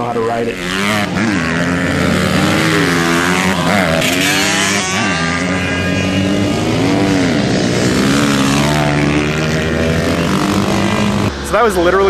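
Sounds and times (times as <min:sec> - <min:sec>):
dirt bike engines racing: 0:00.0 - 0:12.0.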